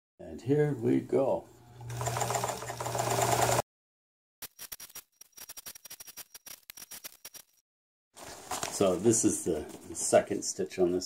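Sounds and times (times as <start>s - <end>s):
sewing machine stitching: 1.8s - 3.6s.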